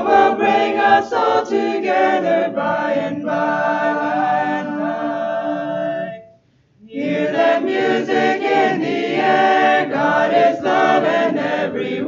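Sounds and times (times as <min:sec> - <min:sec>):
choir singing a cappella: 0:00.0 - 0:12.0.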